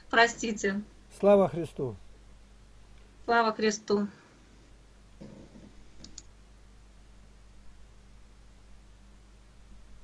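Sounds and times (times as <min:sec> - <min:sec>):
low steady hum: 0:00.0 - 0:10.0
light clicks: 0:06.0 - 0:06.3.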